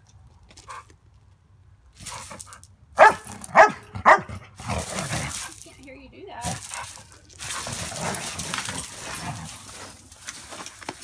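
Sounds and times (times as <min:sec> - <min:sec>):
rough scuffling: 0:02.0 - 0:11.0
dog barking: 0:03.0 - 0:04.3.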